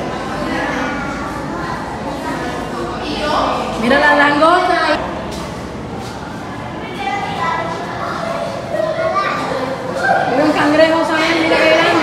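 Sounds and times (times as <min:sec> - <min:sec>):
children talking and calling out: 0:00.0 - 0:12.0.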